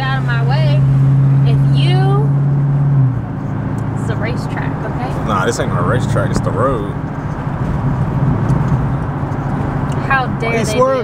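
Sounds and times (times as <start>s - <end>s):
car engine drone inside cabin: 0.0s - 11.0s.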